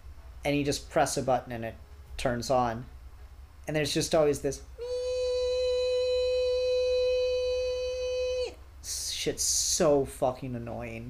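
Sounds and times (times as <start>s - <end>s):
man humming high-pitched whine: 4.8s - 9.2s.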